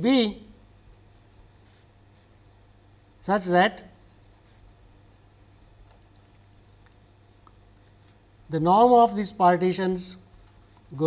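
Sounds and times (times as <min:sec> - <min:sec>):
low steady hum: 0:00.0 - 0:11.0
marker scratching on paper: 0:00.9 - 0:02.3, 0:03.9 - 0:05.8.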